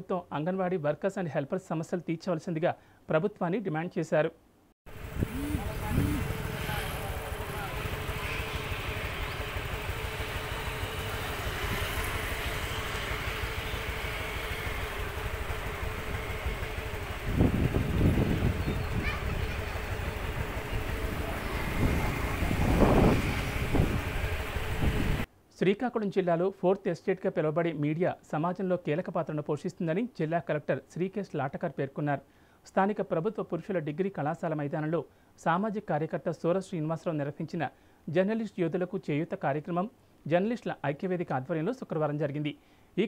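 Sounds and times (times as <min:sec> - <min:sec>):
faint hum: 0:05.0 - 0:22.4.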